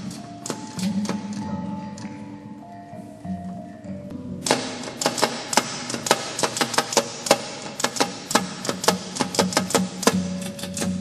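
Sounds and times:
steady low tone: 0.0 - 5.0.

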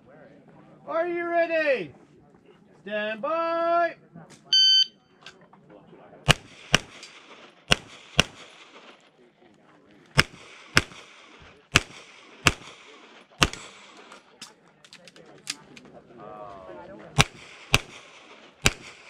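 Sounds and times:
handgun shots: 6.3 - 8.9, 10.2 - 14.0, 17.2 - 19.0.

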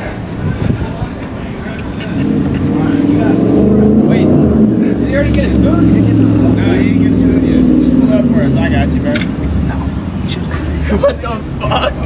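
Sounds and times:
car engine running: 1.7 - 11.9.

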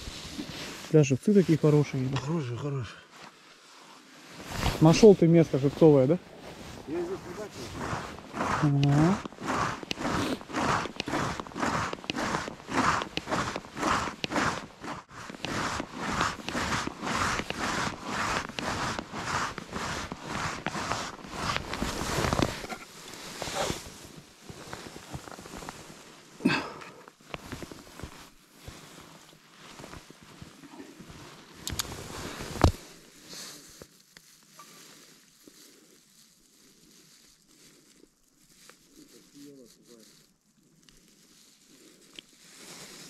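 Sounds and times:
boot footsteps on snowy ice: 4.4 - 26.0.

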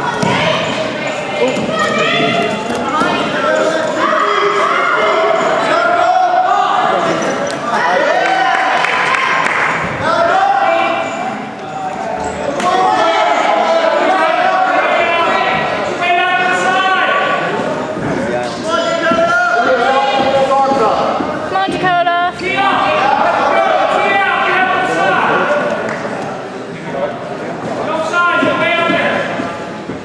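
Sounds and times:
voices shouting: 0.0 - 17.8, 22.4 - 25.7.

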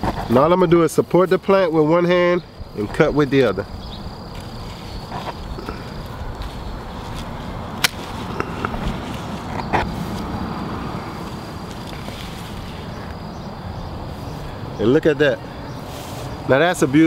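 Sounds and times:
shears clicking: 4.3 - 13.2
pruning shears snapping branch: 7.1 - 10.3.

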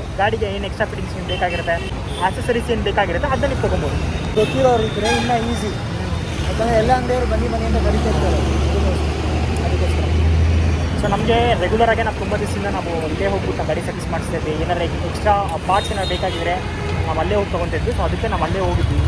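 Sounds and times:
motorbikes and cars passing: 0.0 - 15.8, 16.4 - 19.0
people talking: 0.2 - 10.2, 11.0 - 19.0.

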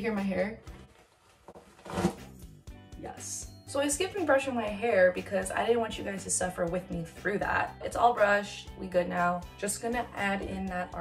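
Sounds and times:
faint background music: 0.0 - 1.0, 1.6 - 11.0
hairbrush stroking hair: 0.7 - 2.4.

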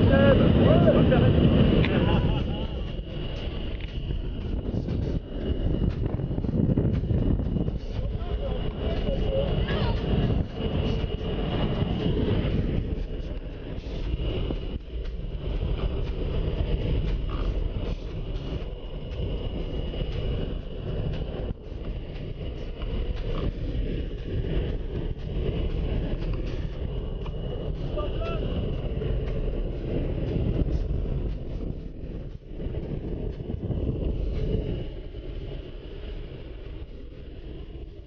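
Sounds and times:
propeller plane engine drone: 0.0 - 38.0
rushing air: 0.0 - 38.0.

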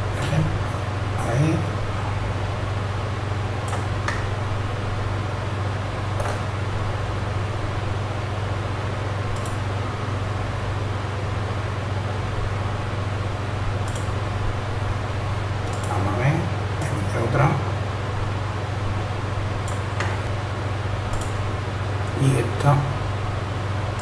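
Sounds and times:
computer hum and hiss: 0.0 - 24.0
mouse clicks: 9.4 - 9.6, 13.9 - 14.1, 21.1 - 21.4.

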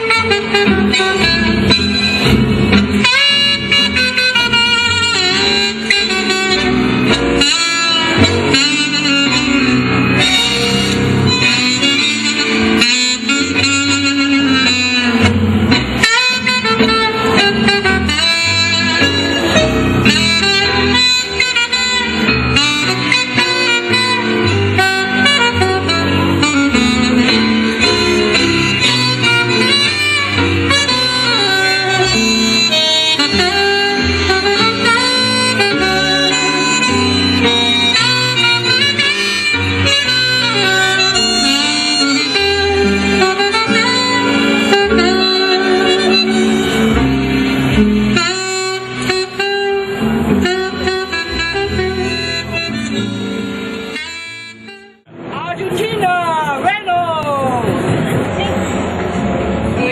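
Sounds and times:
saxophone tango melody: 0.0 - 55.3
bass accompaniment: 0.0 - 59.9.

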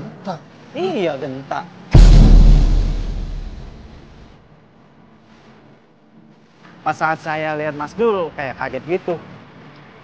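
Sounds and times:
cinematic boom with deep rumble: 2.0 - 4.3.

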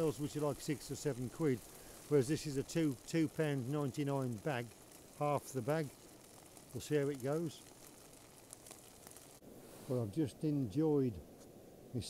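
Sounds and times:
man speaking: 0.0 - 5.9, 6.7 - 7.6, 9.9 - 11.2
small ticks: 0.0 - 9.4
food sizzling in a frying pan: 0.0 - 10.0.

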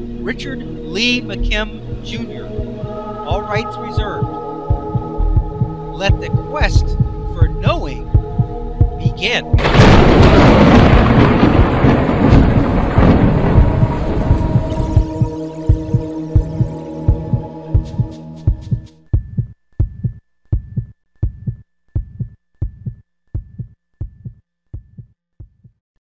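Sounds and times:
loud sustained chord: 0.0 - 12.2
low thudding beat: 0.0 - 25.7.

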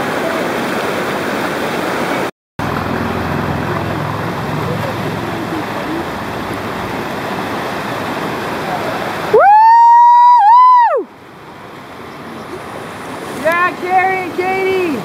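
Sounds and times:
whitewater rushing: 0.0 - 15.0
person whooping high-pitched: 9.3 - 11.1.

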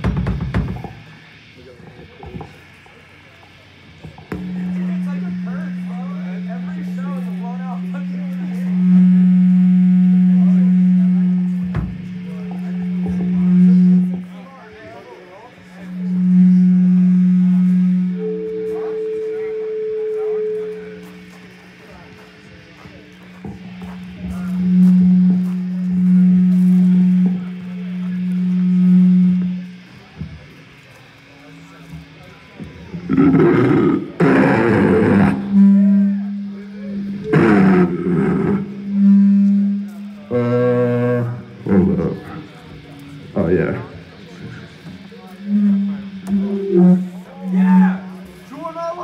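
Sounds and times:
electric guitar sustained low note: 0.0 - 49.0
harsh roaring screams: 33.1 - 35.5.

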